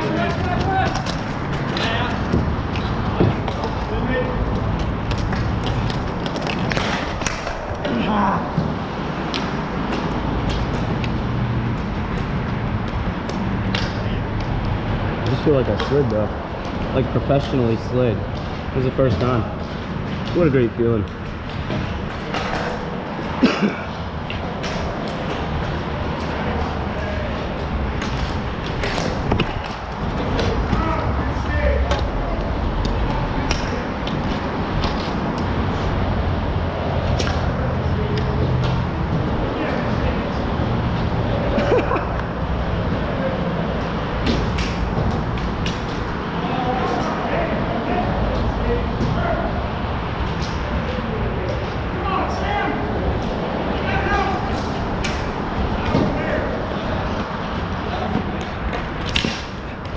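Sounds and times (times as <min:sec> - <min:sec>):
players calling out: 0:00.0 - 0:11.8, 0:22.2 - 0:59.9
steady low rumble: 0:00.0 - 0:59.9.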